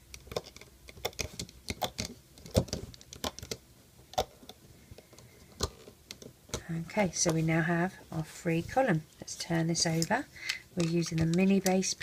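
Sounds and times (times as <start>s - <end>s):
crochet hook clicking on plastic pegs: 0.1s - 4.4s.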